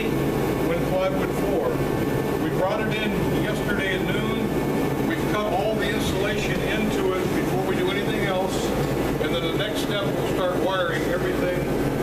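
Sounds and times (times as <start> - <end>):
man talking: 0.0 - 1.8, 2.4 - 11.8
steady low hum: 0.0 - 12.0.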